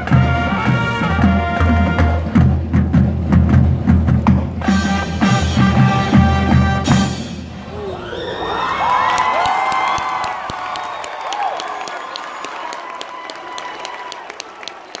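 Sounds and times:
marching band chord: 0.0 - 7.7
crowd cheering and whooping: 7.7 - 15.0
people clapping: 8.6 - 15.0.

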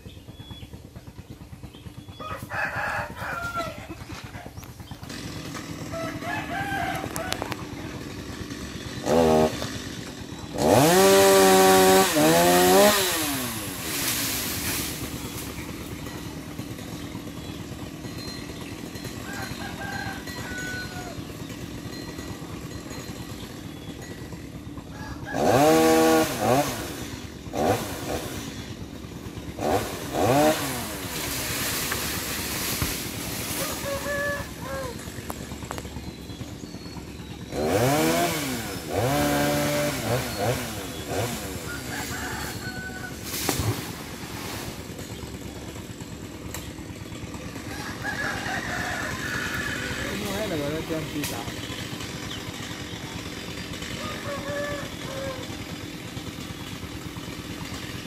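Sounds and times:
chainsaw idling and revving: 0.0 - 58.0.

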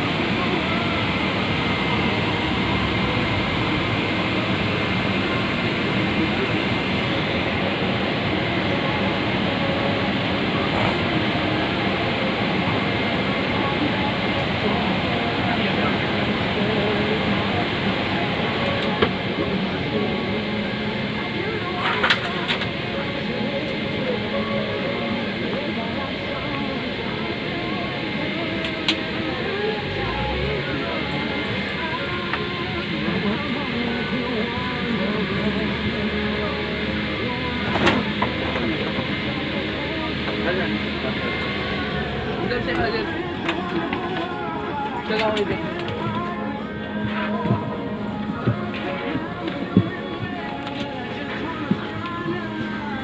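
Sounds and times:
passenger chatter: 0.0 - 53.0
ventilation hum: 0.0 - 53.0.

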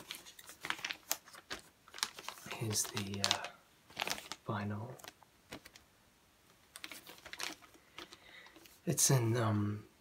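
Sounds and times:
plastic sleeve crinkling: 0.0 - 5.9, 6.5 - 9.0.

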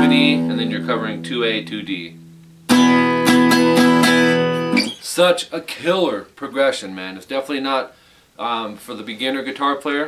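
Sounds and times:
acoustic guitar strumming: 0.0 - 5.0.

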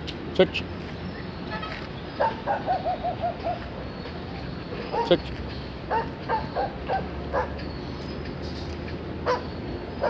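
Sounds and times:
dog barking: 2.2 - 3.6, 4.9 - 5.2, 5.9 - 7.6, 9.2 - 9.5.

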